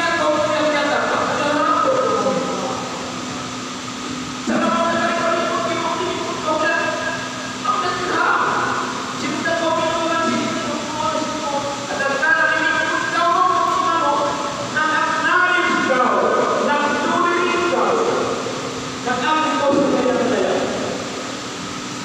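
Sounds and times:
man speaking into a microphone: 0.0 - 3.0, 4.5 - 18.4, 19.0 - 21.0
steady low hum: 0.0 - 22.0.

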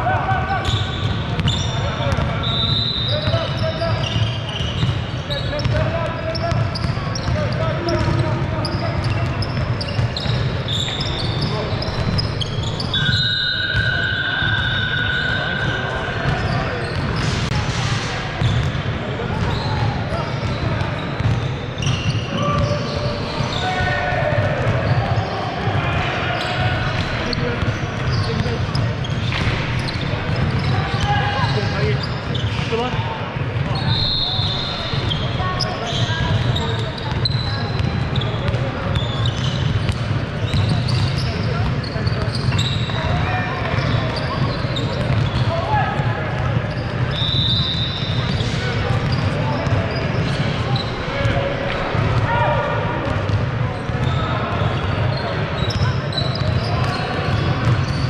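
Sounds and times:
shoes squeaking on floor: 0.4 - 25.5, 26.2 - 33.0, 33.6 - 52.6, 53.2 - 58.0.

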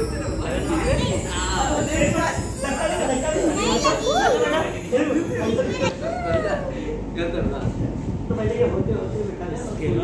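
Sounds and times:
children playing and calling out: 0.0 - 7.1
people talking: 0.0 - 10.0.

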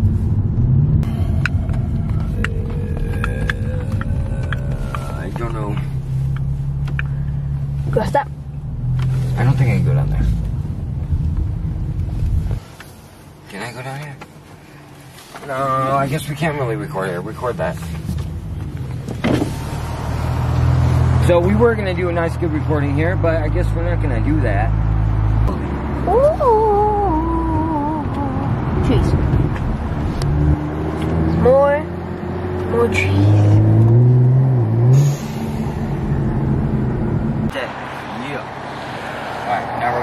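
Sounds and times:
car engine running: 0.0 - 38.9
road noise: 0.0 - 40.0.

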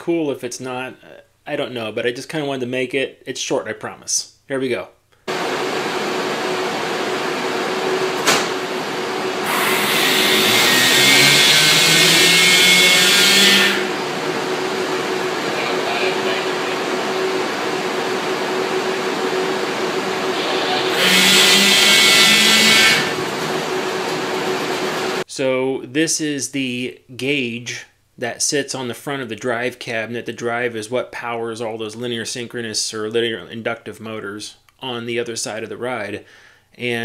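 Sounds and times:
electrical hum: 5.3 - 25.2
rising electric whine and hiss: 5.3 - 25.2.

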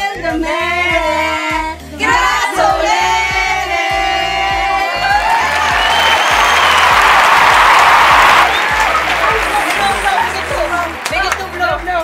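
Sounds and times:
group singing: 0.0 - 6.0
background music with steady beat: 0.0 - 12.0
clapping and cheering: 2.1 - 12.0.

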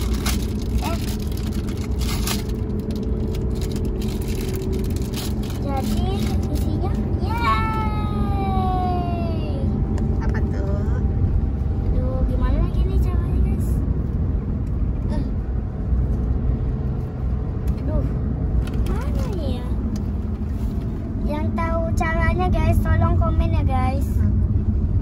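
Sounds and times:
car cabin rumble: 0.0 - 25.0.

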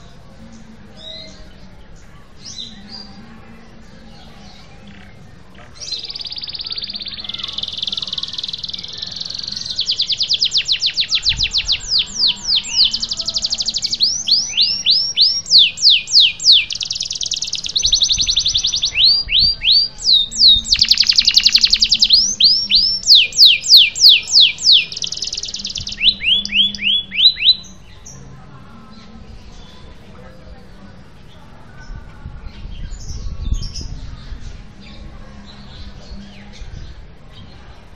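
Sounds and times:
canary singing: 0.0 - 30.1.

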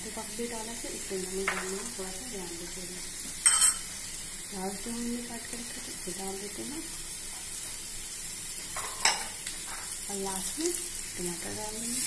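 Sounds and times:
chickpeas sizzling in pan: 0.0 - 12.0
knock in the pan: 1.4 - 1.8.

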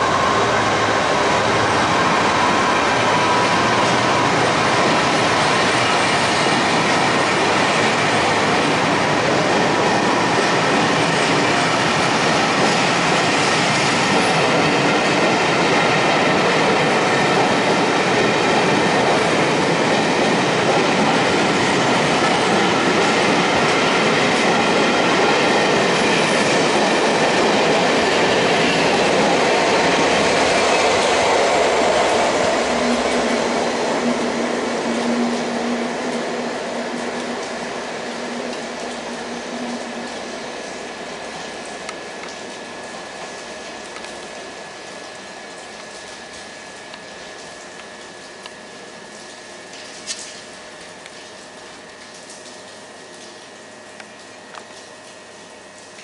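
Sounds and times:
train wheels on rails: 0.0 - 52.6.

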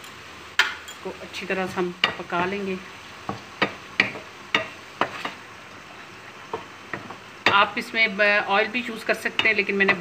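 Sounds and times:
chicken sizzling in a pan: 0.0 - 10.0.

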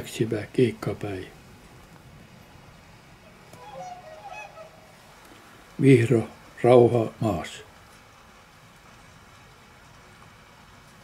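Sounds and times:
swan honking calls: 3.2 - 5.7
man speaking: 5.8 - 7.7.

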